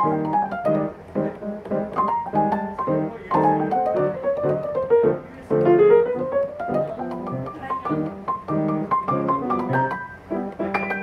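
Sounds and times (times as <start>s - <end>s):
solo jazz piano: 0.0s - 11.0s.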